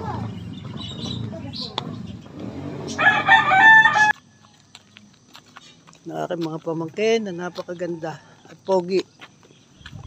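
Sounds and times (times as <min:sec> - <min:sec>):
rooster crowing: 0:02.9 - 0:04.2.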